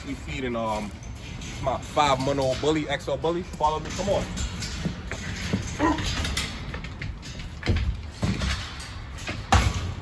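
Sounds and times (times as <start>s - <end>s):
wire gate clanking and rattling: 0.0s - 10.0s.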